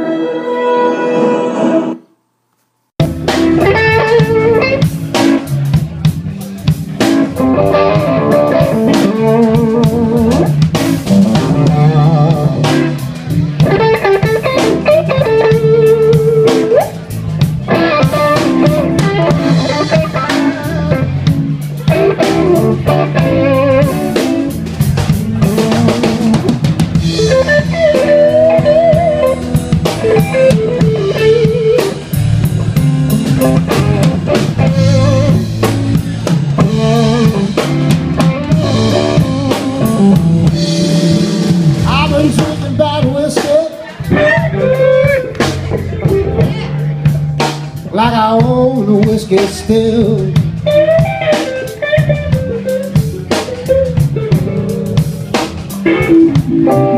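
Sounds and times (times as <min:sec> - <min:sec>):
drum kit: 0:03.0 - 0:56.9
electric guitar lead lines: 0:03.0 - 0:56.9.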